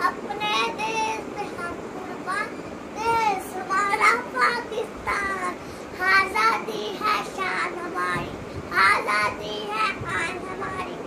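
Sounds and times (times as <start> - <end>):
boy reciting: 0.0 - 11.0.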